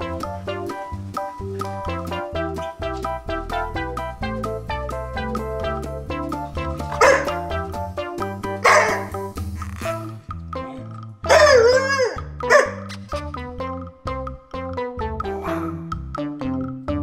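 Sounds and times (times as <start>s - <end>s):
background music: 0.0s - 17.0s
dog grumbling and howling: 11.3s - 12.8s.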